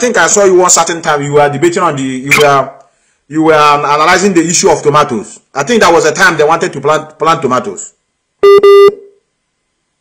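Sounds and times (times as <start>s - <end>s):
electronic phone beeps: 8.4s - 9.2s.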